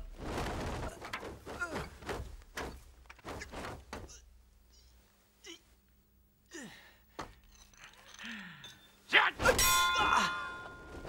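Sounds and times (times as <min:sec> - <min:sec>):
ringing metal clang: 0:07.6 - 0:11.0.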